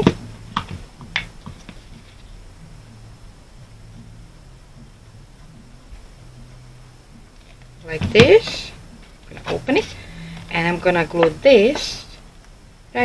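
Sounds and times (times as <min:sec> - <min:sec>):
faint low hum: 0:00.0 - 0:13.0.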